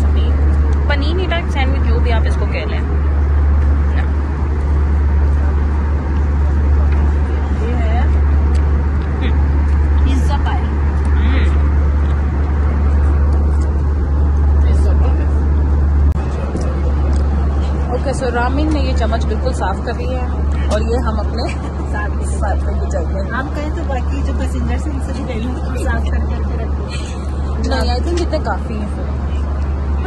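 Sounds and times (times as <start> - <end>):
jet engine drone in cabin: 0.0 - 30.0.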